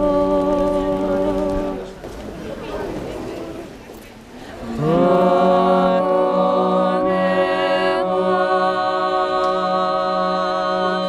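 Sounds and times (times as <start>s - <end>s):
person singing: 0.0s - 2.0s, 4.6s - 11.0s
murmur of voices: 0.0s - 11.0s
street noise: 0.0s - 11.0s.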